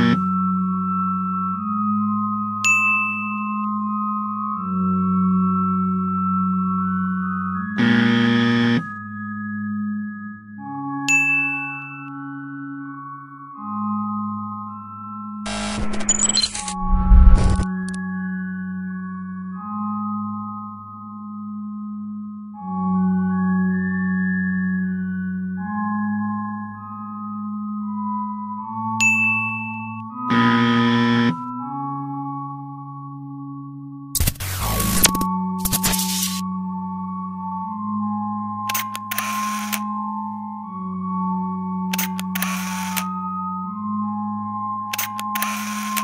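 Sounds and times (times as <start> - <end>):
electronic wrong buzzer: 7.8 - 8.9, 15.5 - 18.0, 30.3 - 31.4, 34.2 - 36.4, 38.8 - 39.9, 42.0 - 43.1, 45.0 - 46.0.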